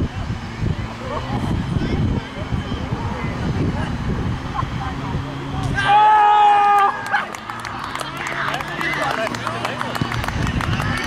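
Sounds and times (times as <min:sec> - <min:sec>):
crowd cheering: 0:04.5 - 0:11.0
scattered clapping: 0:06.6 - 0:11.0.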